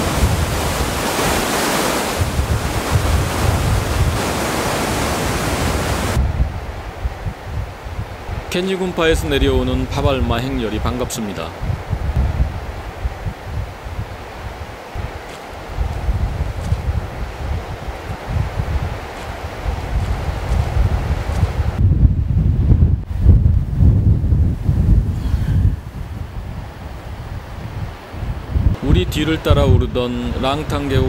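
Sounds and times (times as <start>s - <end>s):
steady hiss: 0.0s - 11.5s
wind buffeting microphone: 0.0s - 31.0s.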